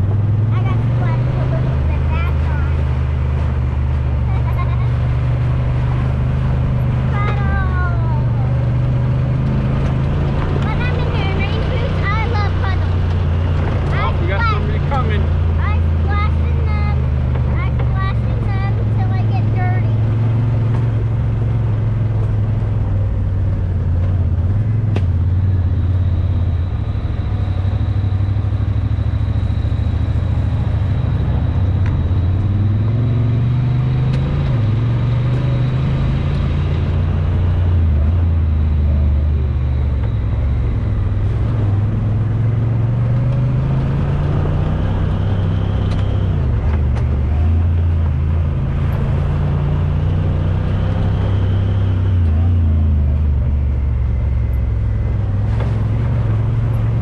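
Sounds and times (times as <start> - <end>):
engine revving: 0.0 - 57.0.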